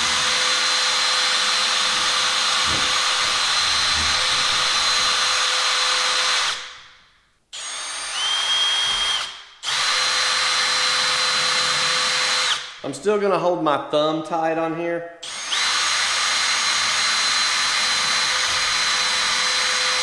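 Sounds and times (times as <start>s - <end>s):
cordless drill routing wood: 0.0s - 6.8s, 7.6s - 12.8s, 15.2s - 20.0s.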